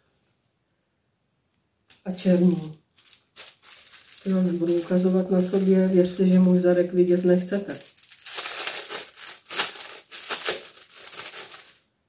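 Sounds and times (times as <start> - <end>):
packaging crinkling: 2.1 - 11.8.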